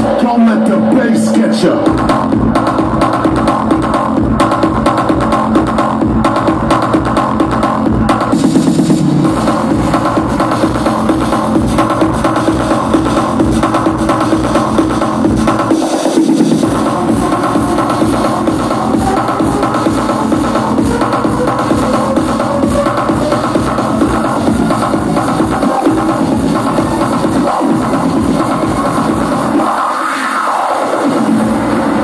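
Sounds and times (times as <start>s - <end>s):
loud house music: 0.0s - 32.0s
kick drum beat: 1.8s - 29.4s.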